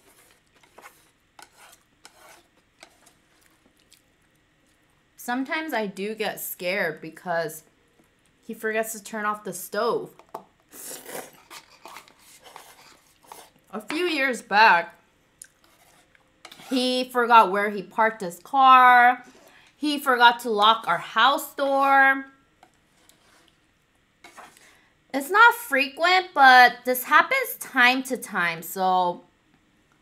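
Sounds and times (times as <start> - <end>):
chopsticks stirring noodles in metal tray: 0.0 - 3.7, 10.8 - 14.2, 15.6 - 17.1, 22.6 - 23.6
wet chewing: 2.8 - 4.9
noodles slurped: 10.7 - 13.6.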